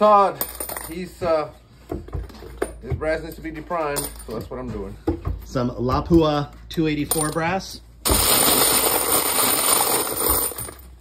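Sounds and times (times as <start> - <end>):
brass rifle cases rattling: 2.0 - 5.6.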